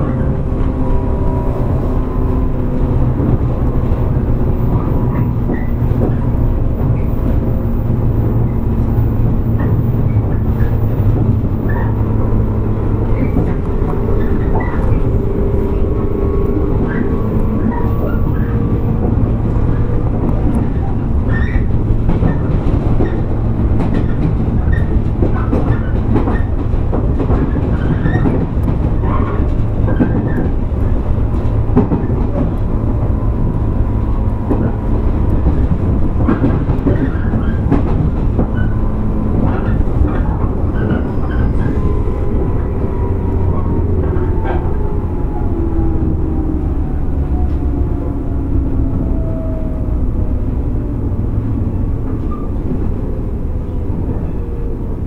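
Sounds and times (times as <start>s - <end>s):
rail-joint clicks: 0.0s - 45.5s
train rumbling along track: 0.0s - 55.0s.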